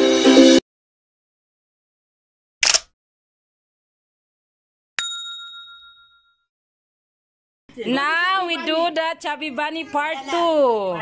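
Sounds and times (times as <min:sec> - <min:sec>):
notification bell ding: 0:05.0 - 0:06.4.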